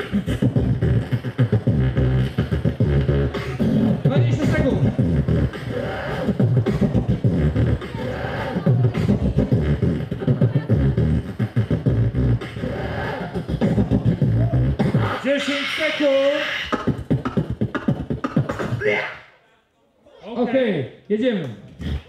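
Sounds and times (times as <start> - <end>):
beatboxing into microphone: 0.0 - 19.3, 21.5 - 22.0.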